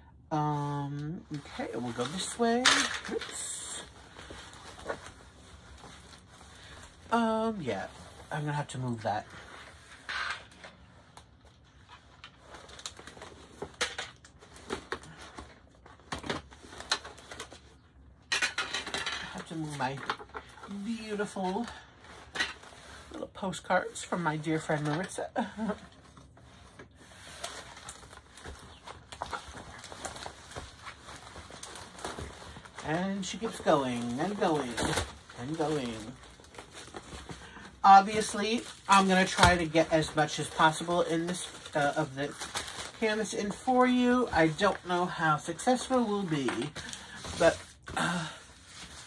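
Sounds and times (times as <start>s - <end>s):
plastic-covered canvas rustling: 0.4s - 49.0s.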